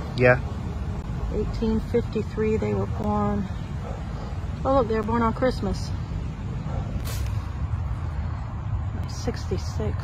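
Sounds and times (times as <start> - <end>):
engine running with low rumble: 0.0 - 10.0
brief hiss: 7.0 - 7.5.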